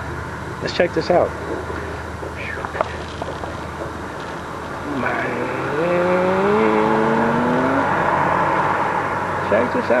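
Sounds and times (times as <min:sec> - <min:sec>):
road noise: 0:00.0 - 0:10.0
vehicle engine accelerating: 0:02.4 - 0:10.0.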